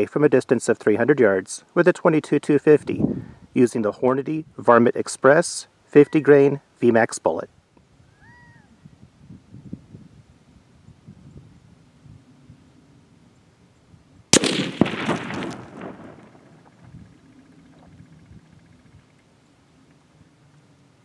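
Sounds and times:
rifle shot: 0:14.3 - 0:17.1.

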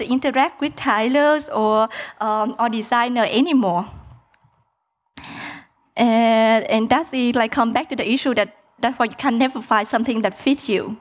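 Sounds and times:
woman breathing: 0:01.9 - 0:02.2, 0:05.2 - 0:05.8.

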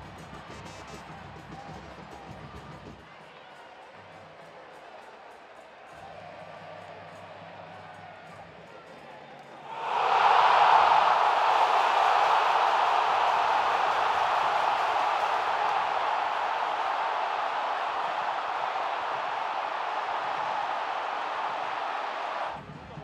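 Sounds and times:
stadium crowd cheering: 0:00.0 - 0:23.0.

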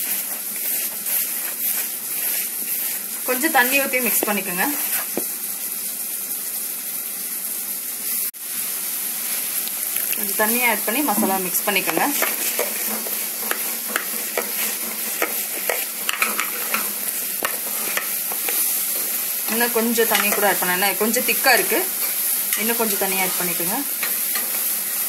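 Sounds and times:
spoon scraping a pan: 0:00.0 - 0:05.3, 0:10.8 - 0:25.0
food sizzling in hot oil: 0:00.0 - 0:25.0.

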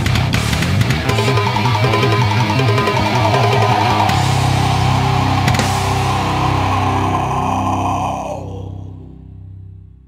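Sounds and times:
distorted guitar chord: 0:00.6 - 0:08.5
low droning tone: 0:01.0 - 0:09.4.

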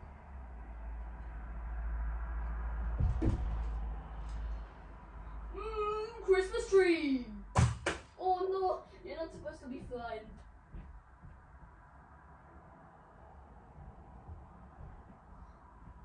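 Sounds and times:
thump: 0:02.9 - 0:03.6
high wordless voice gliding down: 0:05.5 - 0:07.4, 0:08.2 - 0:10.3
sharp knock: 0:07.6 - 0:08.1.

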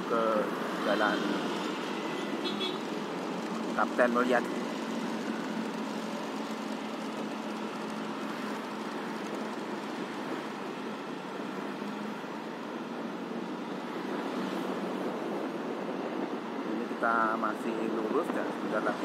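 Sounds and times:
road noise: 0:00.0 - 0:19.0
rushing wind: 0:00.0 - 0:19.0.

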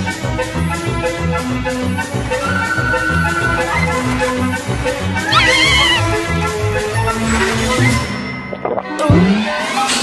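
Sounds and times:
orchestral cartoon music: 0:00.0 - 0:10.0
high wavering cartoon scream: 0:02.4 - 0:04.4, 0:05.2 - 0:06.1.

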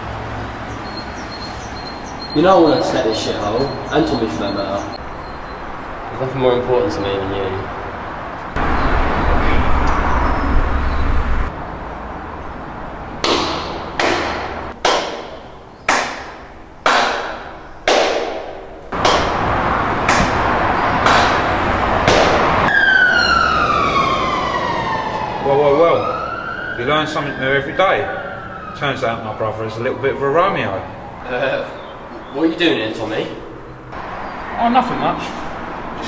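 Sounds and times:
sharp cinematic hits: 0:17.2 - 0:23.4
siren wail: 0:19.4 - 0:31.4.

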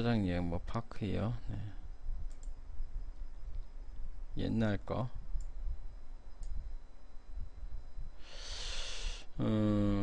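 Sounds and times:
steady low hum: 0:00.0 - 0:10.0
computer mouse clicks: 0:02.2 - 0:02.6.

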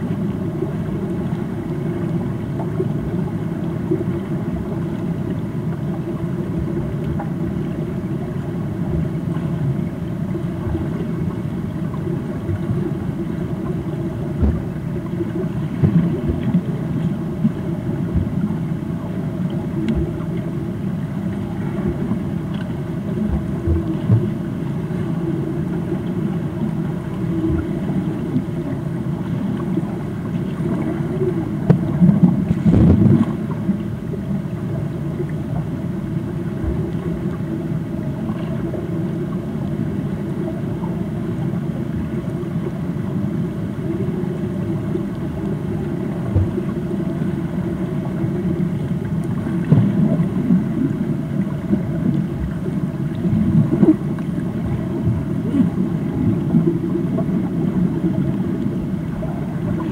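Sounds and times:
muffled underwater water churning: 0:00.0 - 0:59.9
dull underwater thuds: 0:14.3 - 0:14.8, 0:31.6 - 0:33.4.

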